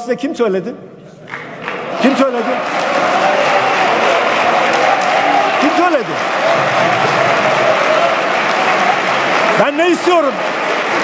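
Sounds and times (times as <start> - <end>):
large group applauding: 1.2 - 11.0.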